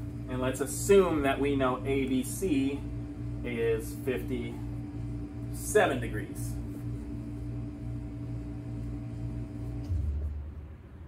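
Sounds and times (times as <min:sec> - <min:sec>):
steady low tonal hum: 0:00.0 - 0:11.0.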